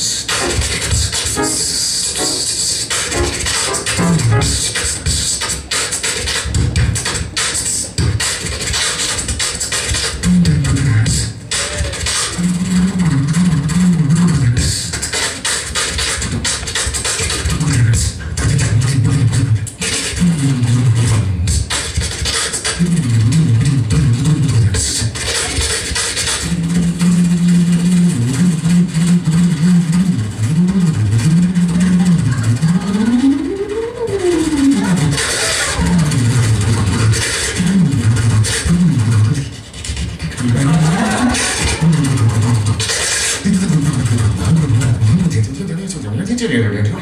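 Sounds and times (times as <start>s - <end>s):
beatboxing bass line: 0.0s - 47.0s.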